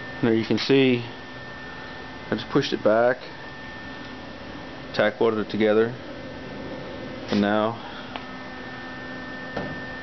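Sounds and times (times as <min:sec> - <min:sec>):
room tone hum: 0:00.0 - 0:10.0.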